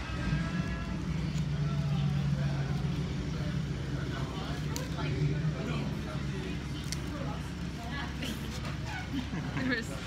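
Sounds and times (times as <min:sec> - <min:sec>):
faint diners' voices: 0:00.0 - 0:10.0.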